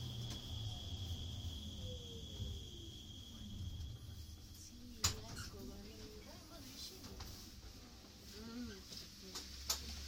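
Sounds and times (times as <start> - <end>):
high-pitched whine: 0.0 - 6.1
low hum: 0.0 - 6.2.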